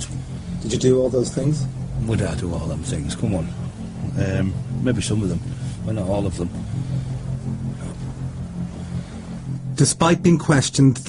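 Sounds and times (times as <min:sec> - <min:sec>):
car engine hum inside cabin: 0:00.0 - 0:11.0.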